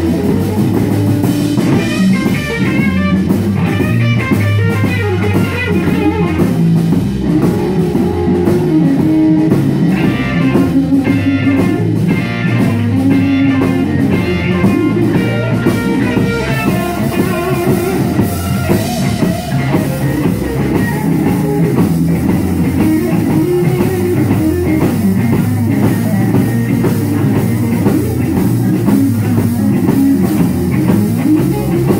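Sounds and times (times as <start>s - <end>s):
live rock band playing: 0.0s - 31.9s
melodic guitar line: 0.0s - 31.9s.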